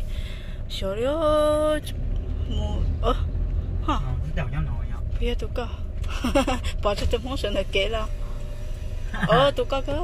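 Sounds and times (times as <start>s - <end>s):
car rumble on unpaved road: 0.0s - 10.0s.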